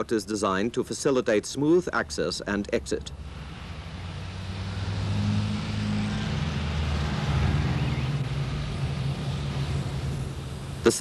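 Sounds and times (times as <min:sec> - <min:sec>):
vehicle engine running: 0:03.0 - 0:11.0.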